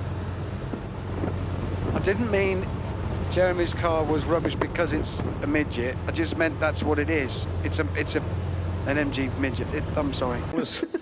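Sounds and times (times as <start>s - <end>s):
car engine droning: 0.0s - 10.6s
wind and road noise: 0.0s - 10.6s.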